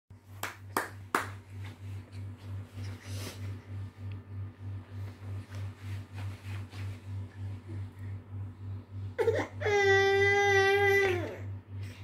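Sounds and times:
baby slapping play mat: 0:05.1 - 0:07.2.

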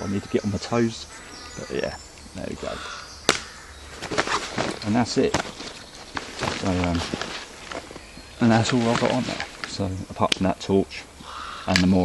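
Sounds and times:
plastic bags crinkling: 0:04.0 - 0:09.8.

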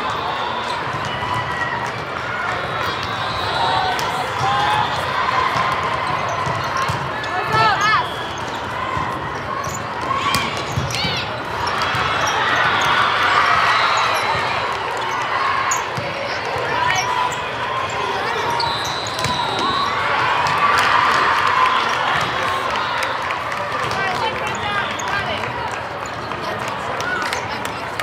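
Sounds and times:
crowd chatter: 0:00.0 - 0:28.0
volleyballs struck and bouncing: 0:05.4 - 0:07.9, 0:08.5 - 0:13.0
sneakers squeaking on court: 0:05.6 - 0:20.6
high whistle: 0:18.4 - 0:20.2.

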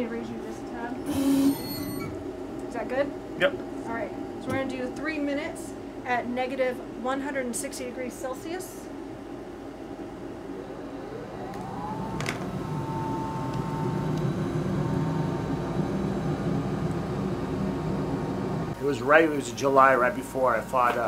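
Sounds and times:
blower and vapour rushing: 0:09.0 - 0:19.5
short rising whine: 0:09.7 - 0:18.8.

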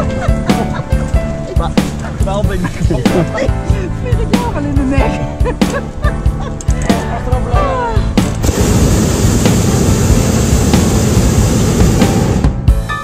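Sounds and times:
propane burner blasting: 0:08.3 - 0:12.7.

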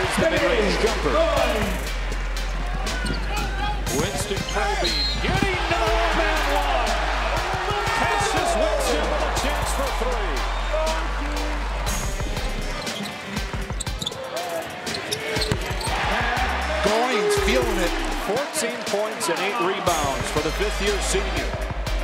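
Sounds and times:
players and crowd shouting: 0:00.0 - 0:01.8, 0:02.4 - 0:21.6
music with deep bass line: 0:00.0 - 0:13.9, 0:19.9 - 0:22.0
sneaker squeaks: 0:02.9 - 0:03.5, 0:04.3 - 0:05.4, 0:12.8 - 0:16.0.

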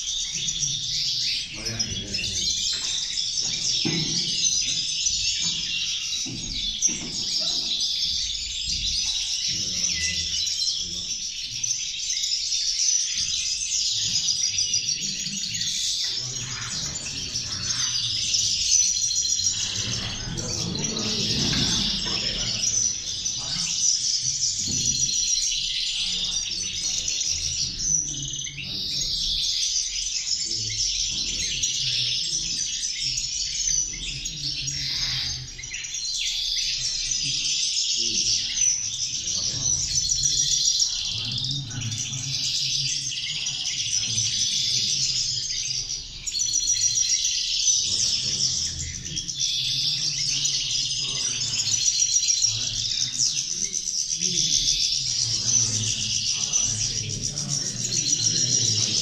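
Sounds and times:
goldfinches singing: 0:00.0 - 0:59.0.

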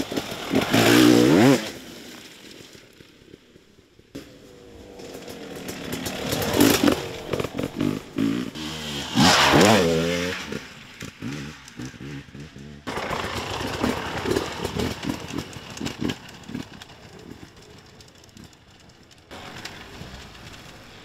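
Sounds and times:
dirt bike engines revving: 0:00.0 - 0:01.8, 0:04.2 - 0:21.0.

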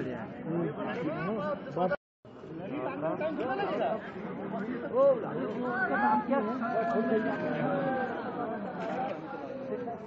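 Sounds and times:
men's voices chattering: 0:00.0 - 0:10.0.

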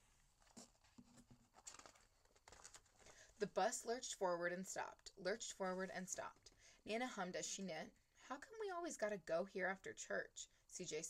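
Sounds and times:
paper page rustling: 0:00.0 - 0:03.2.

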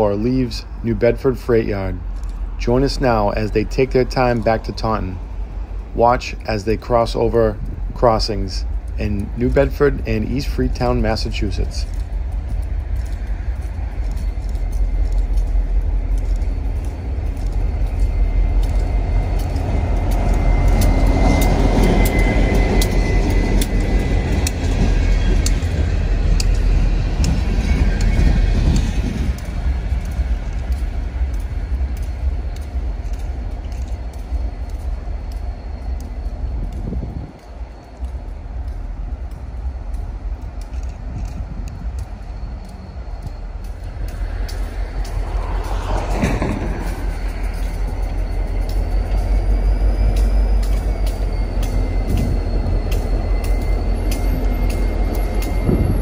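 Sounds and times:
freight train rumbling past: 0:00.0 - 0:56.0
wheels clicking over rails: 0:00.0 - 0:56.0.

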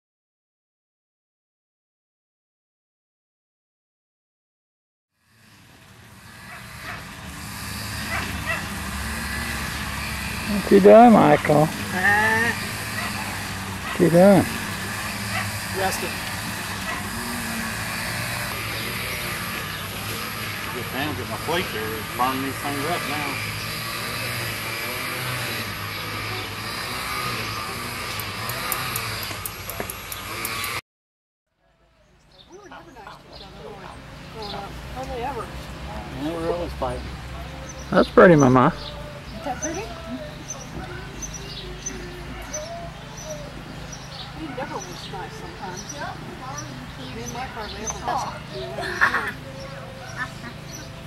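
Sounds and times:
motor-like drone with low hum: 0:05.2 - 0:30.8.

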